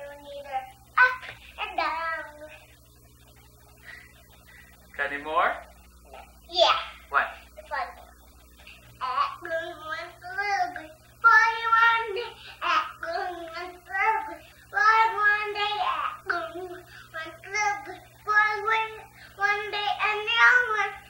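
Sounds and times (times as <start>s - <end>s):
young child singing: 0.0s - 2.7s, 9.0s - 21.0s
child breathing: 3.8s - 4.8s, 12.3s - 12.6s.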